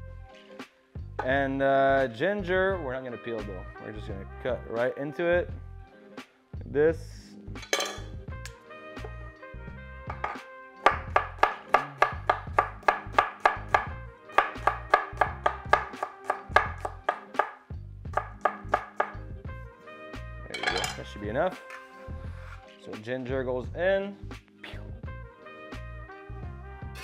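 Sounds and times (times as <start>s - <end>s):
background music: 0.0s - 27.0s.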